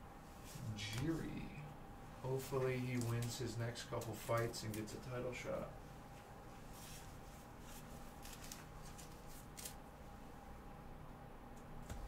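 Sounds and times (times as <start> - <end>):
faint steady hum: 0.0 - 12.0
cards sliding and rustling: 6.6 - 9.8.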